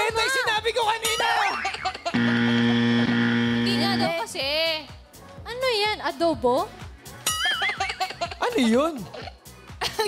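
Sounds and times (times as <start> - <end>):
game show buzzer: 2.1 - 4.2.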